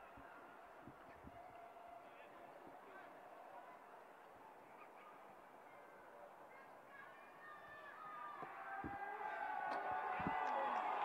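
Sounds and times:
sparse stadium crowd: 0:00.0 - 0:11.0.

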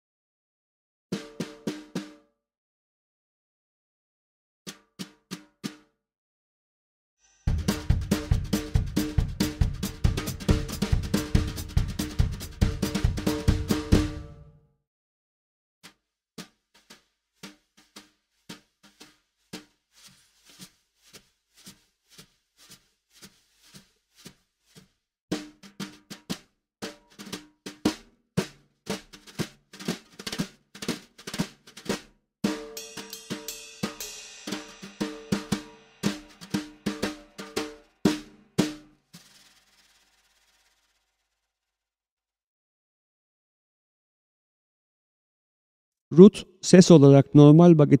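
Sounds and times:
drum kit played with brushes: 0:07.5 - 0:14.4, 0:16.4 - 0:40.1.

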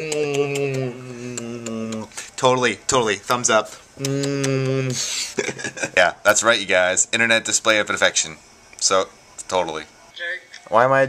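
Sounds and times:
man making kissing noises: 0:00.0 - 0:02.4, 0:04.0 - 0:05.4
man laughing: 0:04.0 - 0:06.2.

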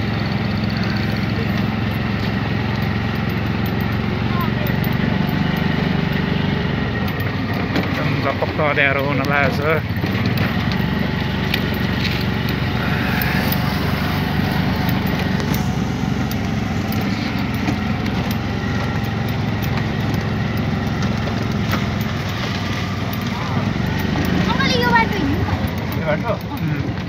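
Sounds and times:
auto-rickshaw engine droning: 0:00.0 - 0:27.0
vehicle rattles and clicks: 0:00.0 - 0:27.0.

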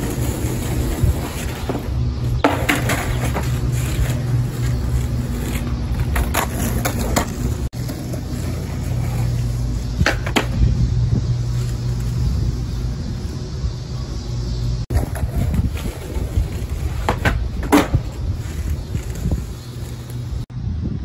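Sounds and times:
skateboard clacks: 0:00.0 - 0:09.2, 0:09.9 - 0:10.6, 0:14.9 - 0:19.2
skateboard rolling on asphalt: 0:00.0 - 0:20.5
steady low rumble: 0:00.0 - 0:21.0.

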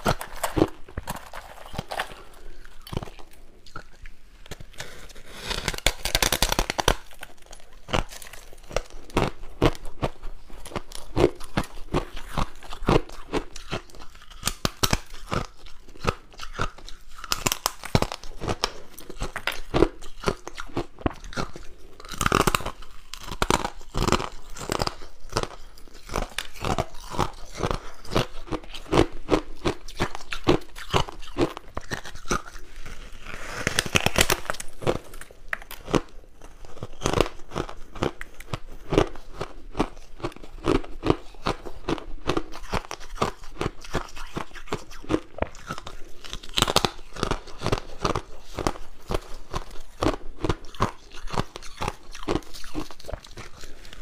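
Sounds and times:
crunching and chewing ice: 0:00.0 - 0:54.0.

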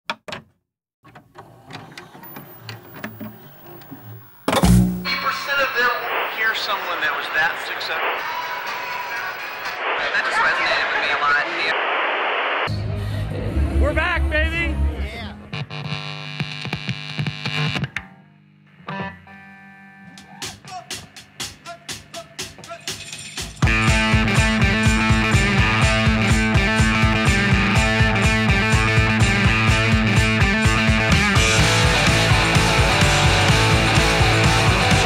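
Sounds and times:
steady electrical buzz: 0:02.5 - 0:09.8.

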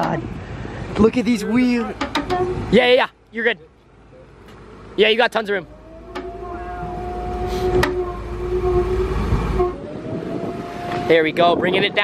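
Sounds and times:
low hum: 0:05.6 - 0:11.1
hydraulic liftgate whine: 0:05.7 - 0:11.2.

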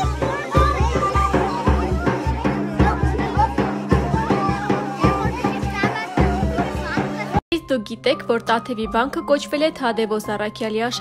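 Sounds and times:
children's voices: 0:00.0 - 0:07.4
large drum beaten with stick: 0:00.0 - 0:07.4
reedy wind instrument melody: 0:00.0 - 0:07.4.

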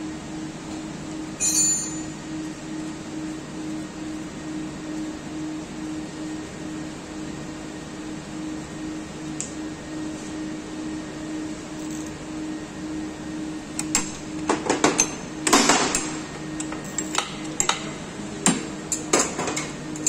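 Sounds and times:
steady low hum: 0:00.0 - 0:20.0
metallic tool clinks and knocks: 0:01.4 - 0:02.1.

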